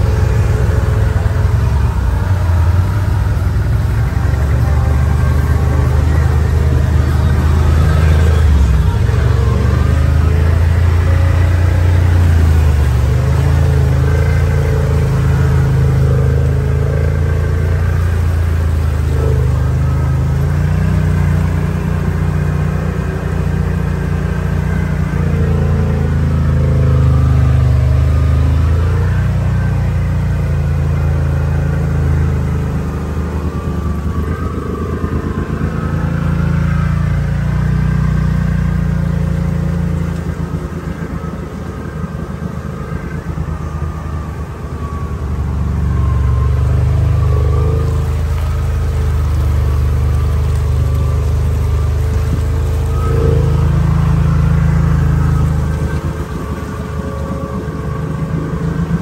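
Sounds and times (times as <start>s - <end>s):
utv engine running under load: 0.0s - 59.0s
vehicle driving through muddy water: 0.0s - 59.0s.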